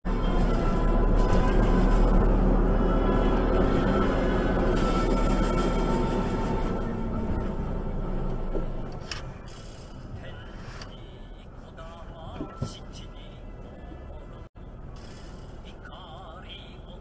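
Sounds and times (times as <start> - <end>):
road noise: 0.0 - 17.0
vehicle engine rumble: 0.0 - 17.0.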